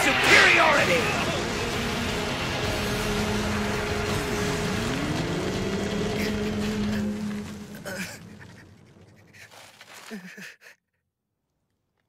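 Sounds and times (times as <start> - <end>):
loud rush of noise: 0.0 - 7.6.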